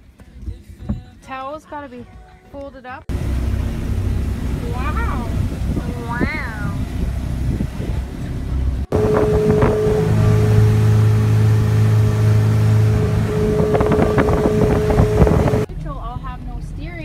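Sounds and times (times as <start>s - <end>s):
motorboat engine droning: 3.1s - 15.7s
wind on microphone: 3.1s - 15.7s.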